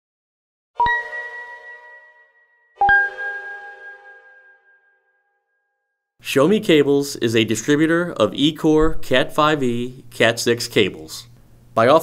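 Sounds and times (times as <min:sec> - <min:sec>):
bell-like logo chime: 0:00.8 - 0:05.8.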